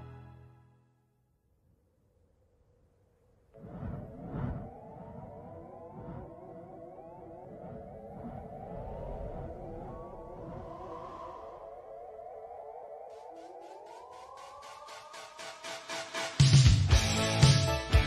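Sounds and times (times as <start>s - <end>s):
low rumble: 3.5s - 12.1s
synthesized rising tones: 3.5s - 16.0s
fast even pulsing: 3.6s - 14.9s.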